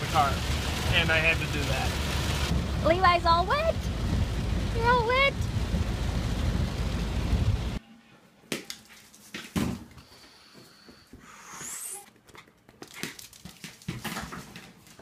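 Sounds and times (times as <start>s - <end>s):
rain on a car: 0.0s - 7.8s
dog paws clicking on floor: 12.2s - 15.0s.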